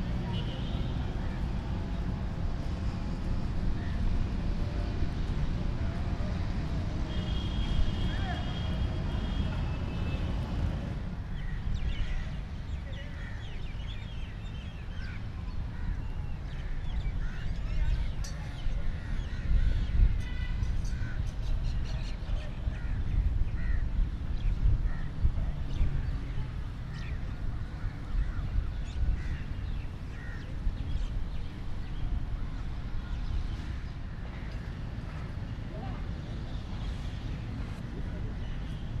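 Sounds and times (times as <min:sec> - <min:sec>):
traffic rumble: 0:00.0 - 0:39.0.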